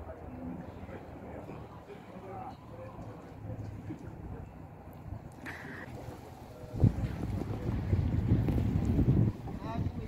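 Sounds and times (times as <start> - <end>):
wind buffeting microphone: 6.5 - 10.0.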